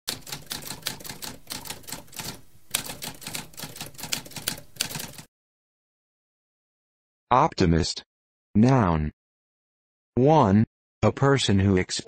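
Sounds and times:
typewriter keystrokes: 0.1s - 5.3s.

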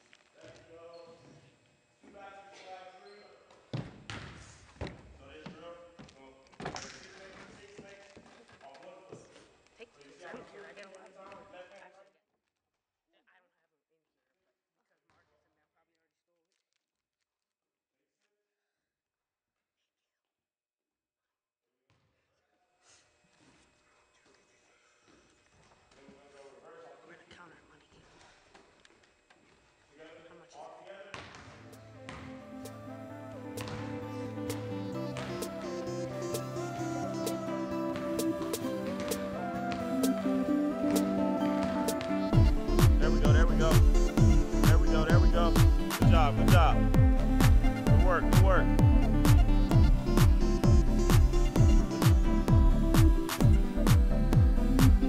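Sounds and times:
background music with held notes: 31.7s - 55.0s
electronic dance beat: 32.4s - 55.0s
faint voice speaking: 47.9s - 48.7s.

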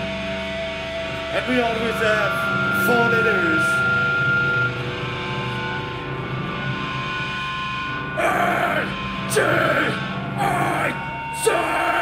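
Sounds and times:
guitar amplifier feedback: 0.0s - 12.0s
low amp drone: 0.0s - 12.0s
sustained guitar notes ringing: 0.0s - 12.0s
person shouting into microphone: 8.2s - 12.0s.

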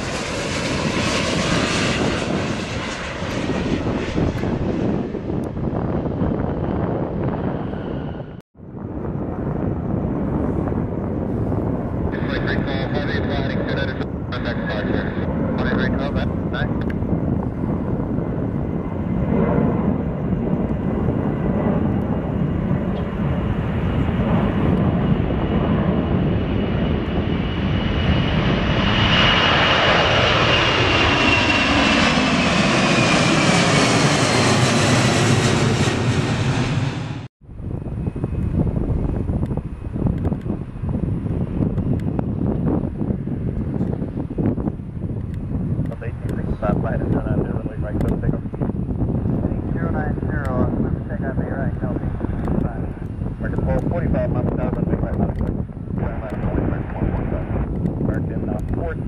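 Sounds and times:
jet engines roaring at takeoff: 0.0s - 59.0s
outdoor background: 0.0s - 59.0s.

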